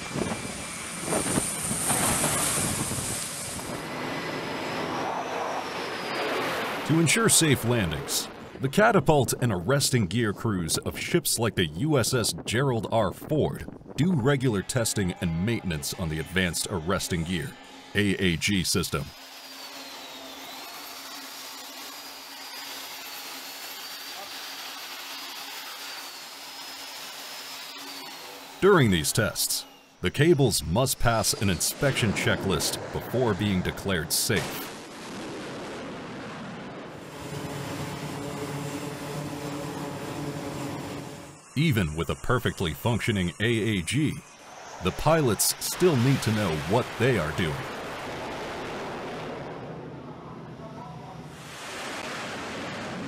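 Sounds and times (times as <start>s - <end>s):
aircraft engine rushing noise: 0.0s - 8.7s, 36.9s - 53.0s
faint high whine: 0.0s - 11.5s, 15.2s - 35.2s, 36.4s - 53.0s
low hum: 28.2s - 53.0s
machinery and ventilation rushing: 37.0s - 41.5s.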